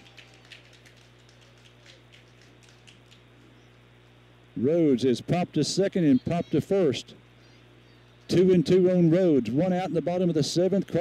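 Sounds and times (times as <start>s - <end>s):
faint steady low hum: 0.0s - 11.0s.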